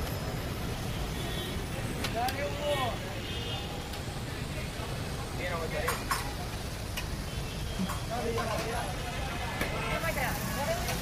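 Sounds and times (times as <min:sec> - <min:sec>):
low rumble of street noise: 0:00.0 - 0:11.0
people talking: 0:01.7 - 0:07.1, 0:07.8 - 0:11.0.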